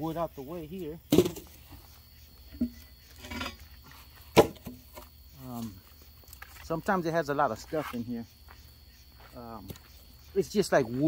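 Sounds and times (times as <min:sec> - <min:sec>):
wood chunks dropping with thuds: 0:01.1 - 0:01.6, 0:04.3 - 0:05.1.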